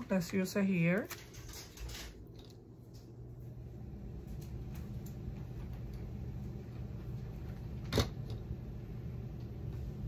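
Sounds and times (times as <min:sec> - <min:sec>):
low hum: 0:02.2 - 0:10.0.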